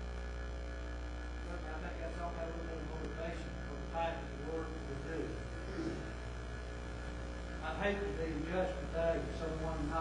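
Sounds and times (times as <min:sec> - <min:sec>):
low electrical mains hum: 0:00.0 - 0:10.0
man speaking: 0:01.4 - 0:06.1, 0:07.6 - 0:10.0.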